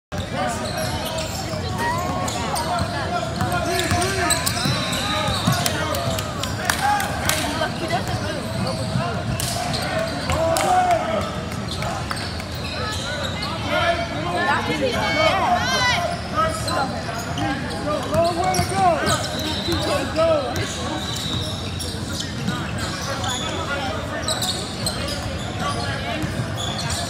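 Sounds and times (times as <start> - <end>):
shoe squeaks: 0.2 - 6.2, 7.7 - 10.4, 11.7 - 13.7, 14.9 - 27.0.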